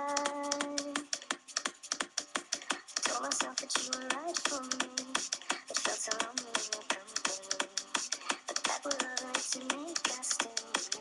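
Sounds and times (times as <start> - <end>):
rapid sharp clicking: 0.1 - 11.0.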